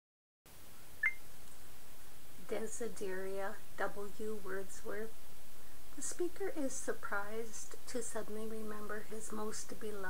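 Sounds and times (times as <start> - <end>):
faint room hiss: 0.5 - 10.0.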